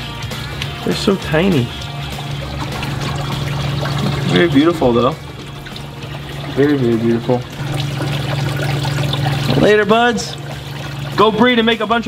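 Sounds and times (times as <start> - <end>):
water trickling: 0.0 - 12.0
steady low hum: 1.6 - 11.2.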